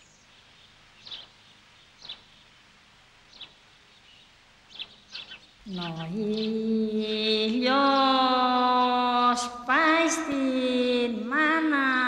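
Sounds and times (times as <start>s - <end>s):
faint outdoor hiss: 0.0s - 12.0s
high bird chirps: 3.3s - 6.6s.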